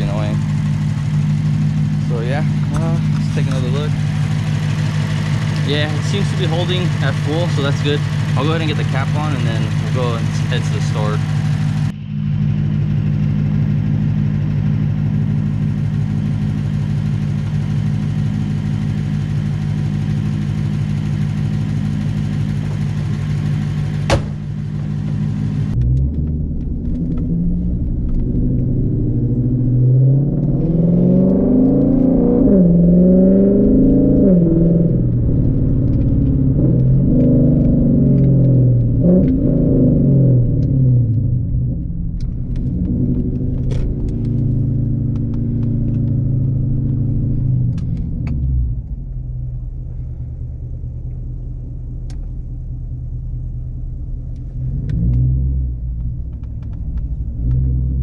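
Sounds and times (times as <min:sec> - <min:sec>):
car engine accelerating: 0:00.0 - 0:58.0
car engine idling: 0:00.0 - 0:58.0.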